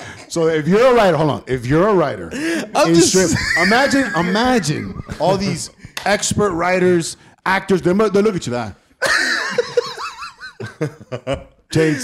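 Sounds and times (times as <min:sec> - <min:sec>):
man laughing heartily: 0:02.4 - 0:06.0, 0:09.0 - 0:12.0.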